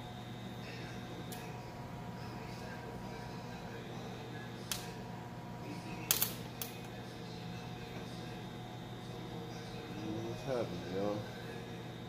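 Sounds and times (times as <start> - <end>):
steady low hum: 0.0 - 12.0
sharp clicks of parts: 6.1 - 6.7.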